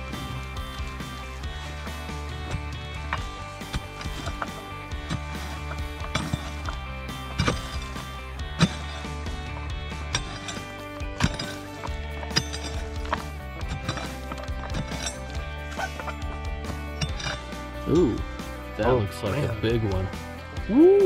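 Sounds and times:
background music: 0.0s - 21.0s
pick mattock striking rock: 2.3s - 18.2s.

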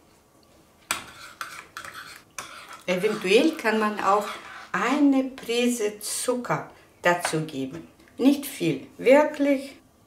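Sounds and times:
spoon scraping ceramic bowl: 0.9s - 5.5s.

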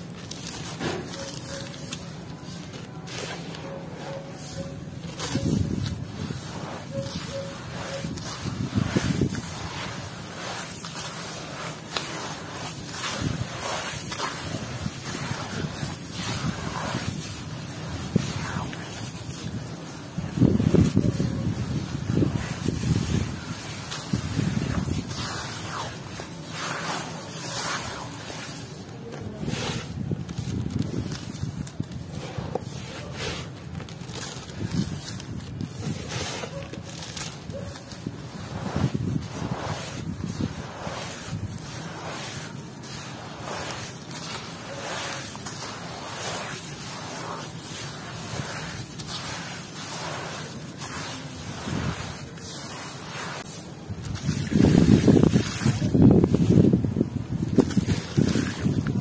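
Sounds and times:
gritty mud crunching: 0.0s - 59.0s
hands squelching wet mud: 0.0s - 59.0s.

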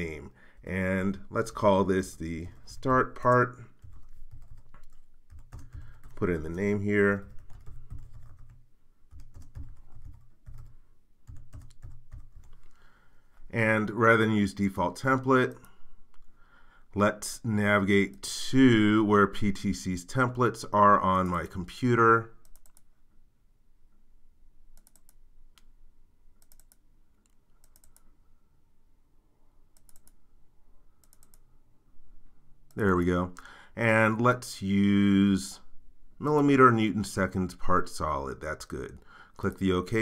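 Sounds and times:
computer keyboard typing: 3.2s - 6.4s, 7.1s - 12.7s, 22.4s - 22.9s, 24.8s - 25.2s, 26.4s - 28.0s, 29.8s - 30.2s, 31.0s - 31.4s
computer mouse double-clicks: 24.8s - 25.7s, 26.4s - 28.0s, 29.8s - 30.2s, 31.0s - 31.4s.

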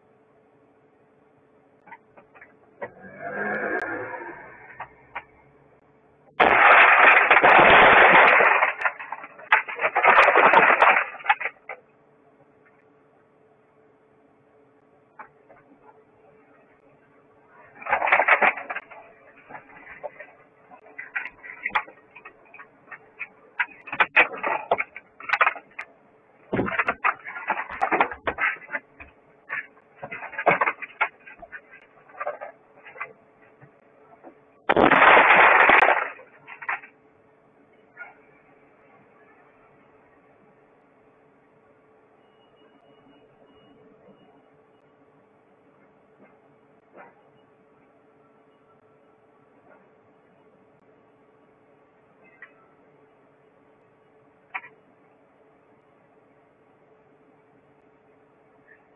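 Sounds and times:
glass window smashing: 6.3s - 11.6s, 34.7s - 36.8s.

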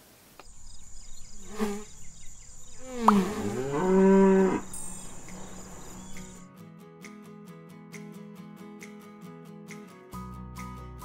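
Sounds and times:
cow mooing: 2.8s - 6.4s.

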